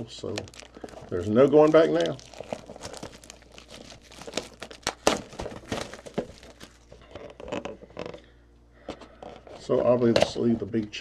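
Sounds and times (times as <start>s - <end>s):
plastic shrink wrap crinkling: 0.0s - 8.3s
sharp plastic crack: 0.3s - 8.2s.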